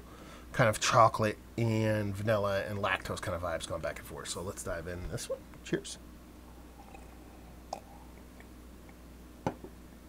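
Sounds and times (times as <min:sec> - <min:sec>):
man sipping and swallowing: 0:06.5 - 0:09.0.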